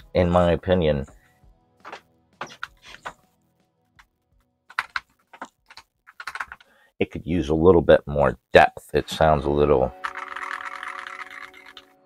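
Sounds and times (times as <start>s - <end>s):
fast typing on keyboard: 4.7s - 6.6s, 10.0s - 12.0s.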